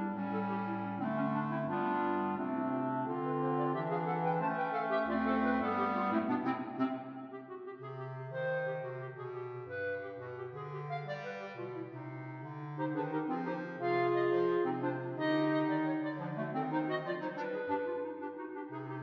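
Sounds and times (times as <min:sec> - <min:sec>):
clarinet ensemble playing: 0:00.0 - 0:19.0
single clarinet melody: 0:00.0 - 0:19.0
walking bass clarinet line: 0:00.0 - 0:19.0.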